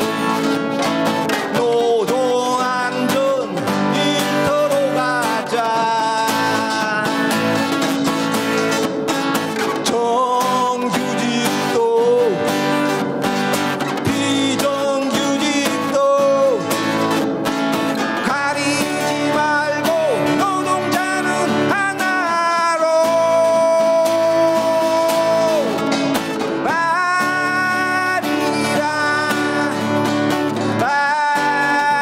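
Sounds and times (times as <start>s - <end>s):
person singing: 0.0s - 17.2s, 17.8s - 32.0s
strummed acoustic guitar: 0.0s - 32.0s.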